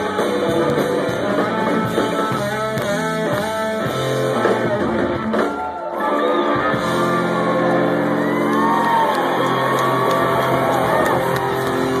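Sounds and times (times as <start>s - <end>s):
live rock band chord: 0.0s - 5.4s
audience cheering and whooping: 5.3s - 12.0s.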